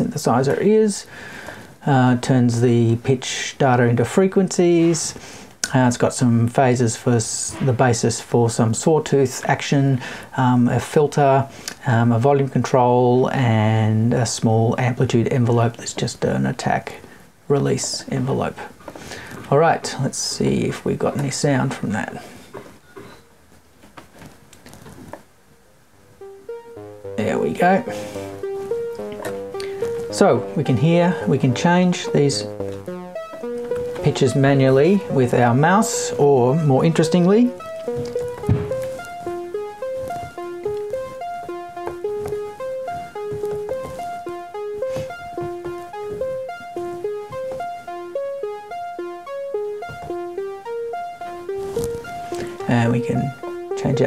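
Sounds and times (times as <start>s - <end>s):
synthesizer arpeggio: 26.1s - 54.0s.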